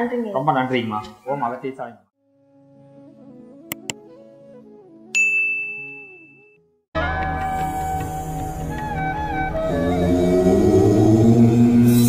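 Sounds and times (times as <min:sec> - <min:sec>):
bright bell ding: 0:05.2 - 0:06.6.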